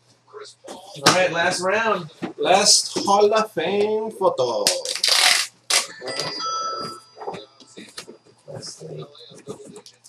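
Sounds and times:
packaging rustling: 4.7s - 5.9s
thin bell-like tone: 5.9s - 7.8s.

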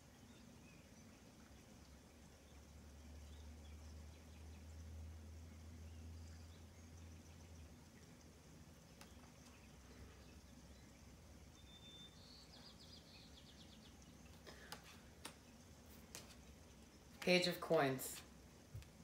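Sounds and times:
faint low hum: 0.0s - 19.0s.

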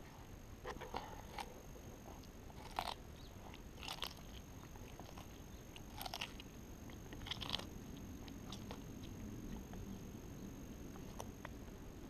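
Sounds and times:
tortoise chewing cucumber crunches: 0.0s - 12.0s.

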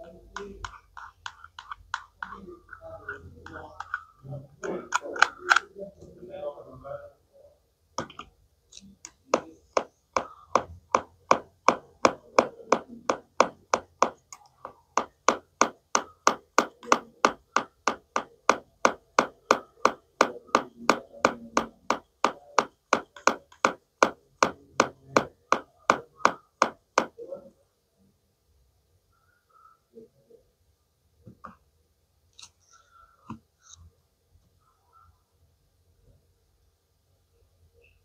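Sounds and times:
plastic toy knife tapping: 15.0s - 27.1s.

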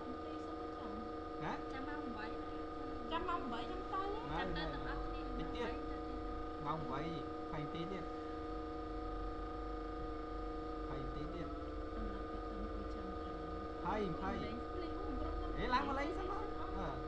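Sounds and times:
electrical hum with held tones: 0.0s - 17.0s.

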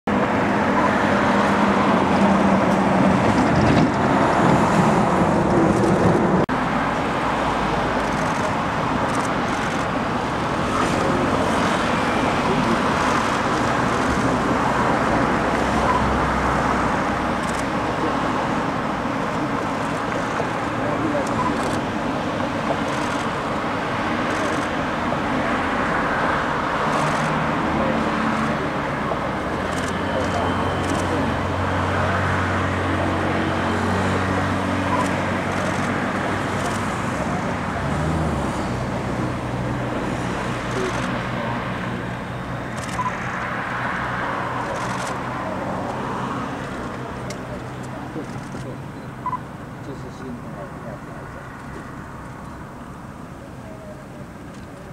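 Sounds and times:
road traffic rushing: 0.1s - 54.9s.

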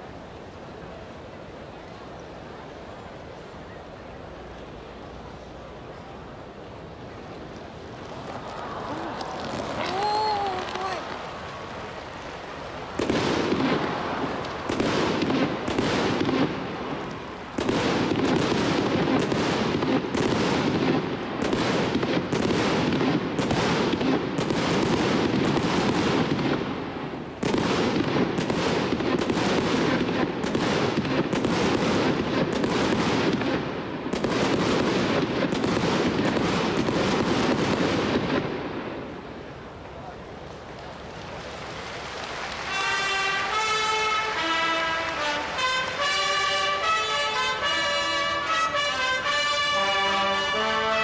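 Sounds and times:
rapid firework bangs: 8.2s - 12.0s, 12.7s - 39.1s, 42.6s - 50.9s.

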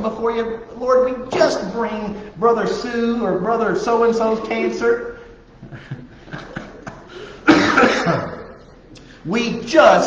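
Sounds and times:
man coughing: 5.8s - 8.6s.

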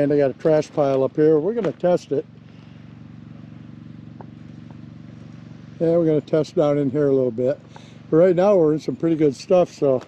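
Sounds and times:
small gasoline engine chugging: 0.0s - 10.0s.

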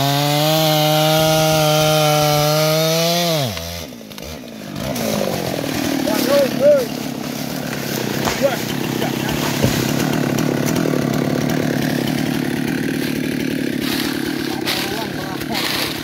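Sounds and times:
chainsaw idling: 0.0s - 16.0s
tree cracking and knocking: 0.5s - 16.0s.

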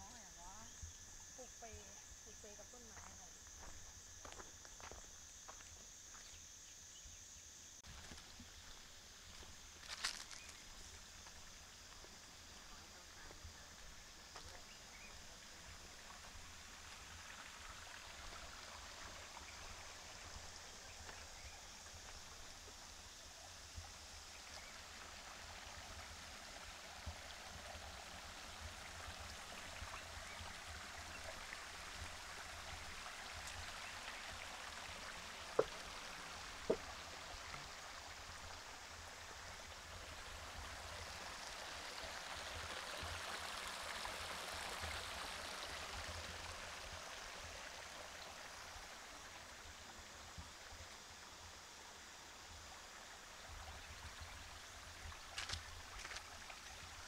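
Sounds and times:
creek flowing: 7.8s - 57.0s.

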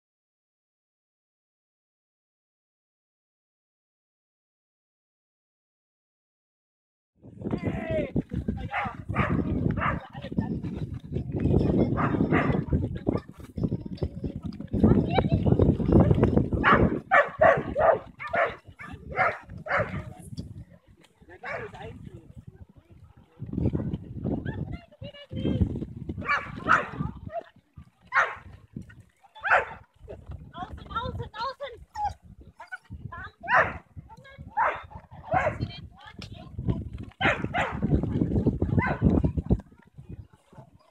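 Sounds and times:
wind rumbling on microphone: 7.2s - 40.9s
dog barking: 8.7s - 10.1s, 11.9s - 12.7s, 16.6s - 20.1s, 21.4s - 21.8s, 26.2s - 27.4s, 28.1s - 28.5s, 29.4s - 29.9s, 33.4s - 33.9s, 34.5s - 35.6s, 37.2s - 37.8s, 38.8s - 39.0s.

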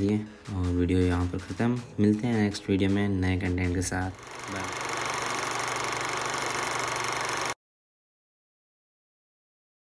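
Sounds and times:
film projector whirring: 4.1s - 7.6s.

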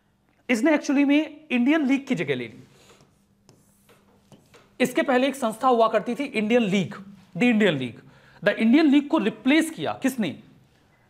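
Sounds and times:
pen tapping and scraping touchscreen: 2.8s - 4.8s.

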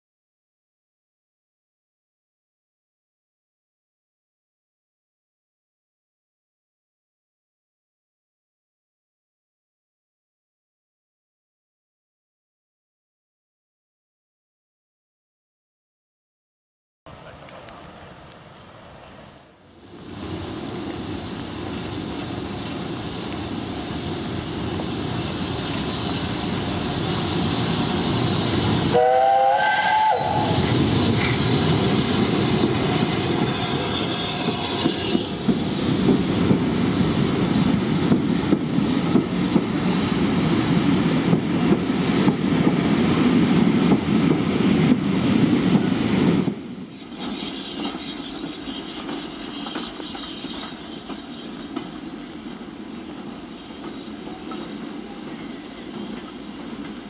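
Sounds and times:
distant railway background: 17.1s - 57.0s
train rumbling past: 17.1s - 57.0s
steam locomotive whistle: 28.8s - 31.3s, 32.7s - 35.3s.

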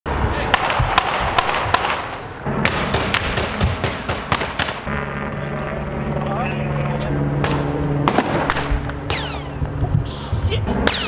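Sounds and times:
gunshots: 0.5s - 5.0s, 7.4s - 9.4s
steady low hum: 2.3s - 11.0s.

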